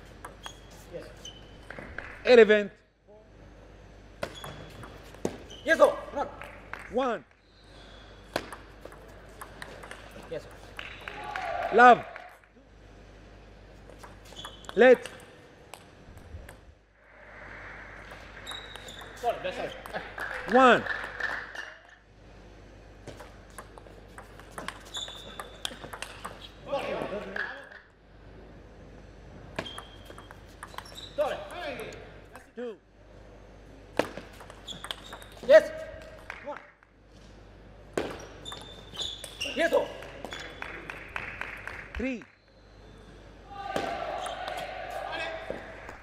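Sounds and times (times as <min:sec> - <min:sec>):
low hall noise: 0:00.0 - 0:46.0
table tennis ball clicking: 0:08.4 - 0:10.4, 0:23.5 - 0:26.4.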